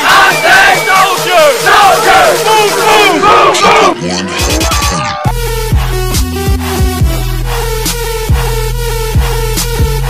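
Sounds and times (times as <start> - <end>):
young people yelling and cheering: 0.0 - 5.4.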